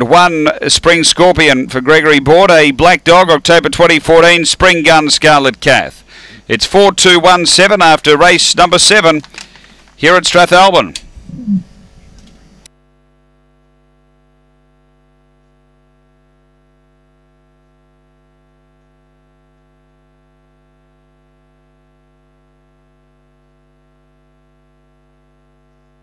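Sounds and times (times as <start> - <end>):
broadcast track sound: 0.0 - 11.6
electrical mains hum: 0.0 - 26.0.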